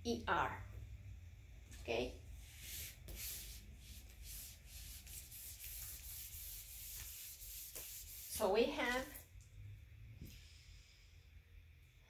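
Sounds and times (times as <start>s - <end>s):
eraser wiping whiteboard: 2.4s - 8.9s.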